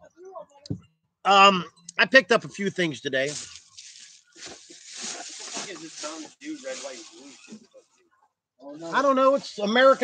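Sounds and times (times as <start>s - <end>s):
man's voice: 1.3s - 3.5s, 5.5s - 7.4s, 8.7s - 10.0s
quiet talk: 3.3s - 10.0s.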